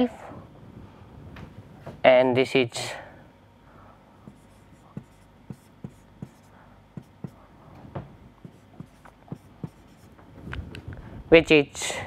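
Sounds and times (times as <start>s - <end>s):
marker scratching on whiteboard: 4.2s - 7.4s, 8.4s - 10.2s
marker tip tapping board: 4.3s - 6.4s, 7.0s - 7.4s, 8.4s - 10.0s.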